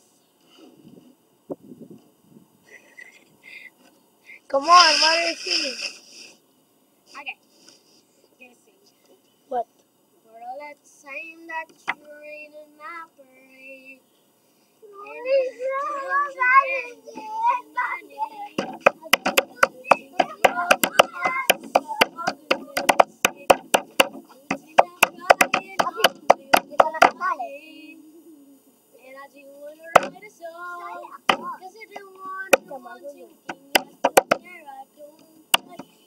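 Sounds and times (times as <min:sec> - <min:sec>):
child singing: 0:10.3 - 0:14.0, 0:14.8 - 0:36.0
hand claps: 0:18.6 - 0:24.2.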